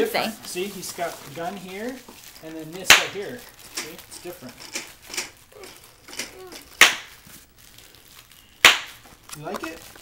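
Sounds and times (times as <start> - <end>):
sharp smacks: 6.8 - 7.1, 8.6 - 9.0.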